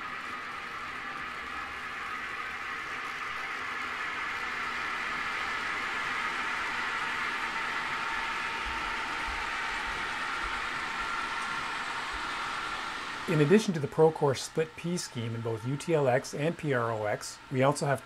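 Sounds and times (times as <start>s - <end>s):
model train whirring on rails: 0.0s - 18.0s.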